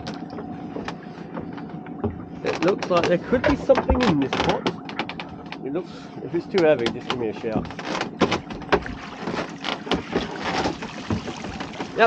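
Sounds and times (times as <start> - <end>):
pot knocking against boat: 0.0 - 5.2, 6.6 - 12.0
boat machinery hum: 0.0 - 12.0.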